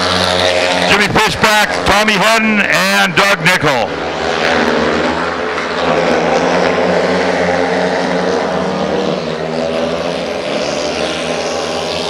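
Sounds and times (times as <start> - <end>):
motorcycles racing: 0.0 - 12.0.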